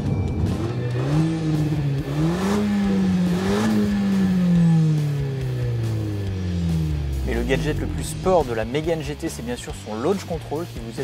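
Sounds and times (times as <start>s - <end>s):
car engine revving: 0.3s - 11.0s.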